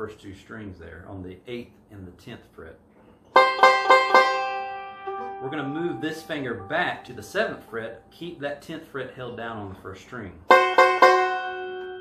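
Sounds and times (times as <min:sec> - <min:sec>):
banjo notes picked: 0:03.3 - 0:08.6, 0:10.5 - 0:12.0.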